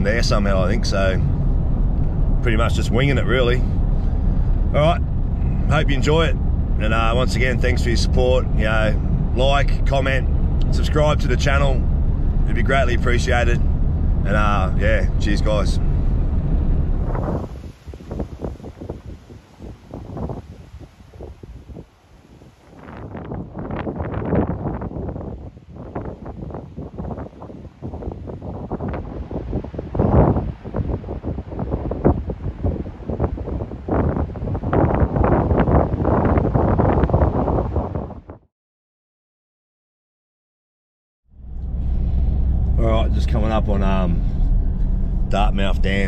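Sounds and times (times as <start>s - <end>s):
gusty wind buffeting microphone: 0.0s - 38.5s, 41.3s - 46.0s.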